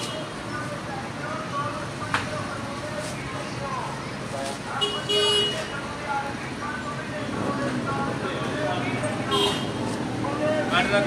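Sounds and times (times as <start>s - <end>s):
vehicle horn honking: 4.8s - 5.8s, 9.3s - 9.8s.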